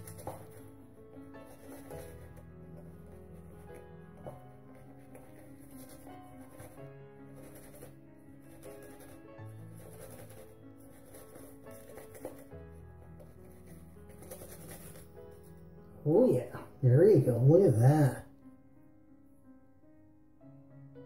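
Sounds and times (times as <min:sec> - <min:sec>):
shaving brush swishing lather: 0:00.0 - 0:00.7, 0:01.4 - 0:12.6, 0:13.2 - 0:15.4.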